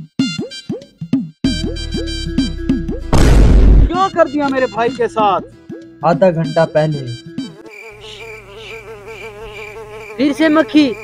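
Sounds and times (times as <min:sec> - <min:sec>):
housefly buzzing: 0:07.2 - 0:11.0.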